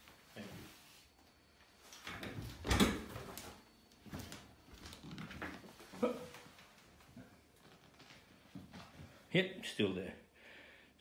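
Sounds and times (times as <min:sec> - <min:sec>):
rustling and shuffling: 0:00.0 - 0:09.3.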